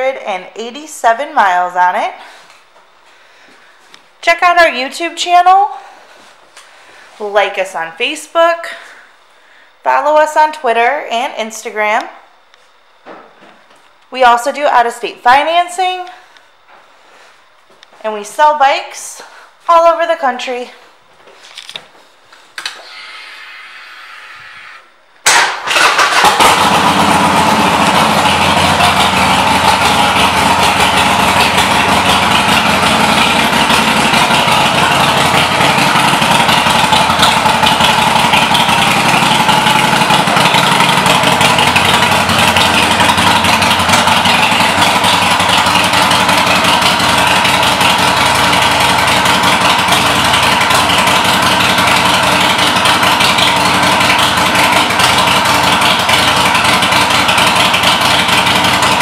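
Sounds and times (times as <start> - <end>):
motorcycle engine idling: 25.6 - 59.0.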